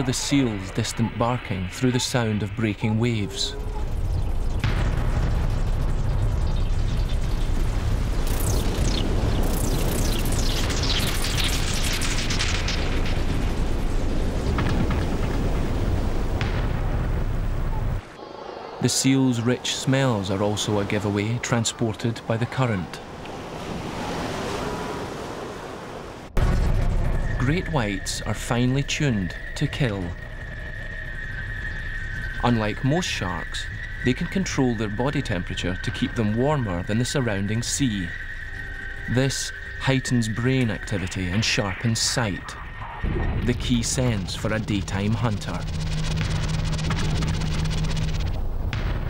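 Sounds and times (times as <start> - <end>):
low rumble: 0.0 - 18.8, 26.4 - 49.0
ocean waves breaking: 12.9 - 26.4.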